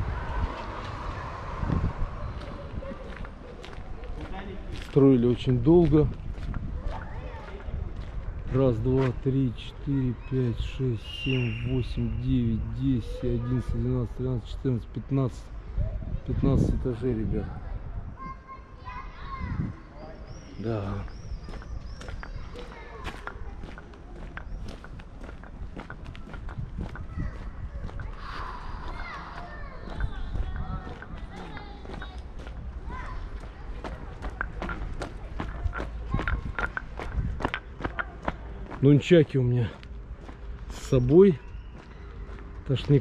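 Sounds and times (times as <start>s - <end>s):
outdoor background noise: 0.0s - 43.0s
children calling out: 0.1s - 3.8s, 21.3s - 24.4s, 26.2s - 36.8s
footsteps on wet asphalt: 1.8s - 9.3s, 20.8s - 43.0s.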